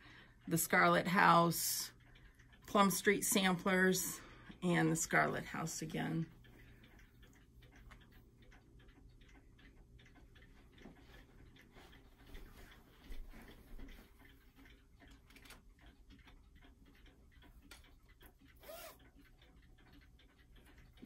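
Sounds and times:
clock ticking faintly: 0:00.0 - 0:21.0.

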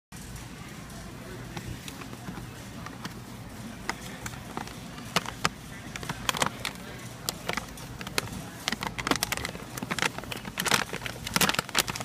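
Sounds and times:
steady low hum: 0:00.2 - 0:12.0
paper bag crinkling: 0:01.7 - 0:12.0.

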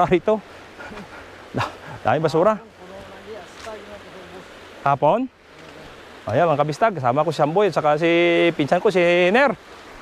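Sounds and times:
shallow river running over stones: 0:00.0 - 0:10.0.

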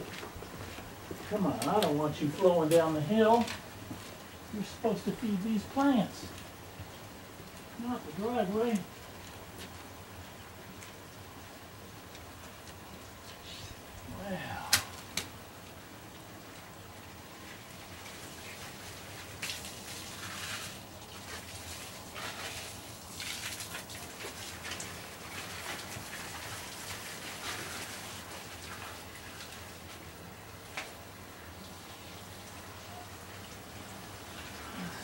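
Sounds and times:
rustling of stiff leaves: 0:00.0 - 0:35.0
water splashing from a hose: 0:01.2 - 0:35.0.

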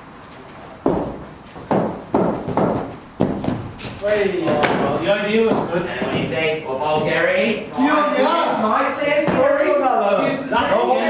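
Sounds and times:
heavy footsteps on artificial turf: 0:00.8 - 0:07.5.

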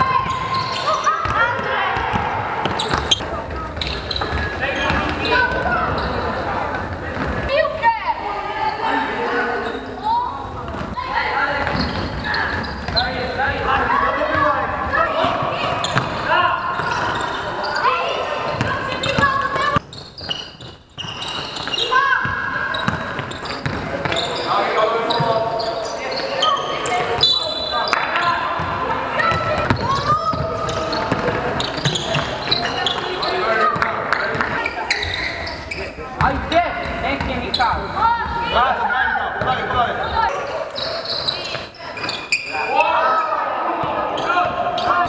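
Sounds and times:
basketball bouncing on court floor: 0:00.0 - 0:06.2, 0:11.6 - 0:13.7, 0:15.2 - 0:17.2, 0:20.6 - 0:24.3, 0:27.9 - 0:35.2
players shouting: 0:07.5 - 0:19.8, 0:42.5 - 0:45.0.

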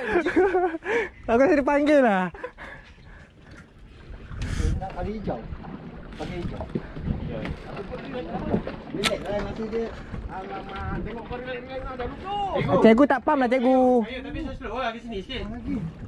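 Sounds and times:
wind rumbling on microphone: 0:00.0 - 0:16.0
men talking: 0:04.5 - 0:05.5, 0:06.1 - 0:12.8, 0:13.7 - 0:16.0.

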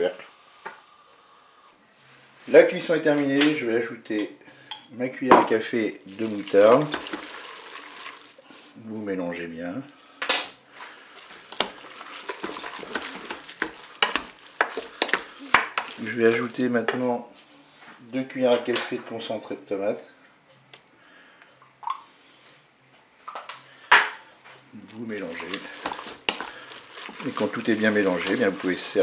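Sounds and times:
spoon stirring wet spaghetti: 0:05.8 - 0:08.5, 0:10.7 - 0:16.9, 0:24.8 - 0:29.0.

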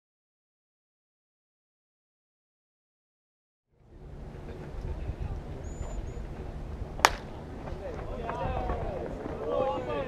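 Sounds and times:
baseball bat cracking ball: 0:07.0 - 0:07.4.

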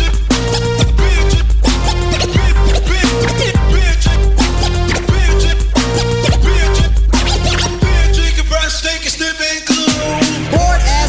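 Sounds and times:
drum machine beat with heavy bass: 0:00.0 - 0:11.0
turntable scratches: 0:00.0 - 0:11.0.

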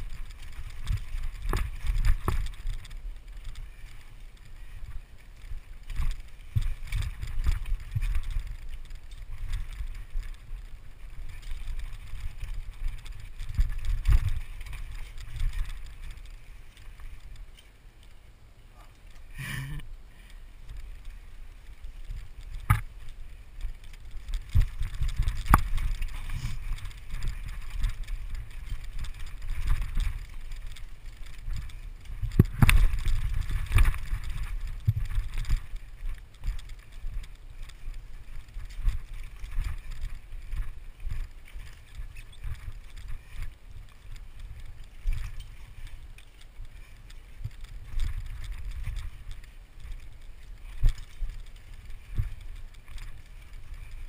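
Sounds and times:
mountain bike rumbling downhill: 0:00.0 - 0:54.0
bike knocks and clatter: 0:22.5 - 0:23.0, 0:23.9 - 0:36.7.

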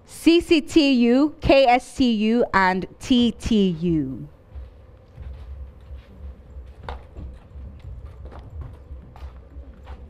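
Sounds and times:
steady low hum: 0:00.0 - 0:10.0
footsteps on stage floor: 0:04.3 - 0:10.0.

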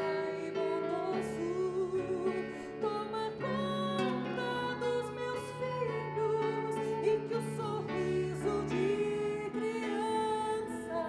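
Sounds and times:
person singing long notes: 0:00.0 - 0:11.0
soft instrumental accompaniment: 0:00.0 - 0:11.0.

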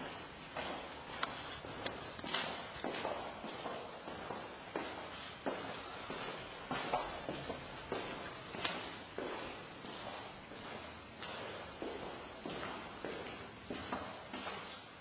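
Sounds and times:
footsteps walking: 0:00.0 - 0:15.0
steady hiss: 0:00.7 - 0:03.2.

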